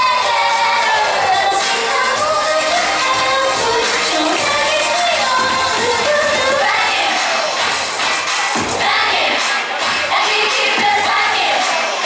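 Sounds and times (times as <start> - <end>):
women singing into microphones: 0.0 - 7.5, 10.0 - 11.9
crowd noise: 0.0 - 12.0
pop backing track over pa: 0.0 - 12.0.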